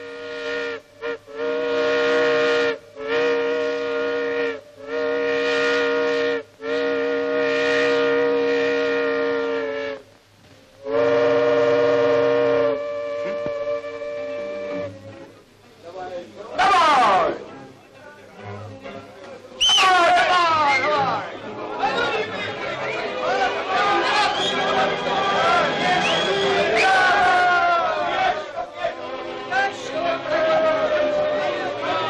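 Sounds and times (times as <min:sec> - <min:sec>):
steam whistle blasts: 0:00.0 - 0:10.1, 0:10.8 - 0:15.3, 0:19.6 - 0:21.0, 0:23.7 - 0:28.3, 0:28.9 - 0:32.0.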